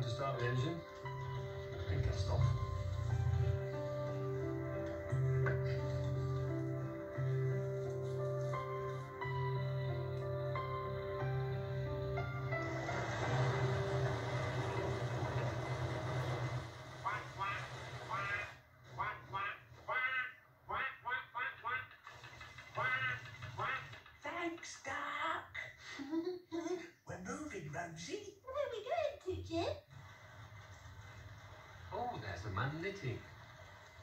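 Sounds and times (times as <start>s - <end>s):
diesel engine humming: 11.2s - 17.9s.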